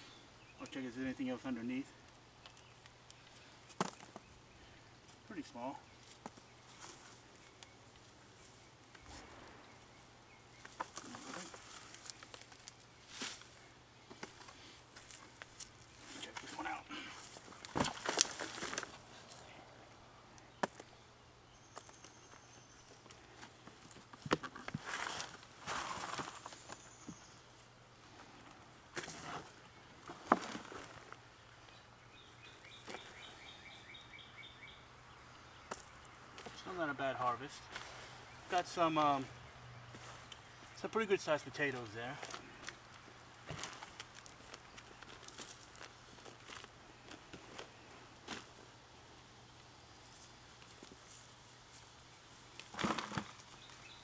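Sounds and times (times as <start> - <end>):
soil rustling and scraping: 5.3 - 19.5, 23.1 - 26.9, 28.1 - 31.2, 35.7 - 39.3, 39.9 - 48.6, 50.0 - 54.0.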